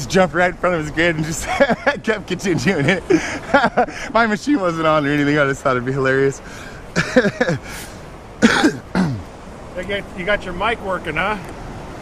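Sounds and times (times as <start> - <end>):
man laughing: 1.1 - 4.4, 6.8 - 8.9.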